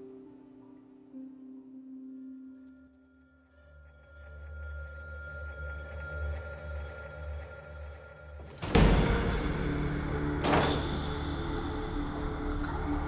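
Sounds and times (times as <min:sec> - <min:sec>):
soft sustained tone: 0:00.0 - 0:13.0
high ringing tones: 0:01.9 - 0:11.5
low pulsing drone: 0:04.1 - 0:13.0.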